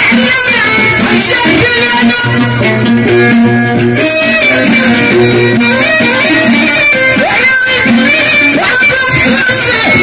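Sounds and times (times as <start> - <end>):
live band music over loudspeakers: 0.0 - 10.0.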